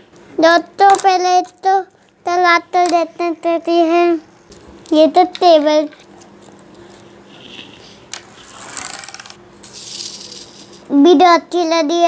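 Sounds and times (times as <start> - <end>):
toy car wheels whirring: 7.3 - 10.8
toy car rattling clicks: 8.6 - 10.6.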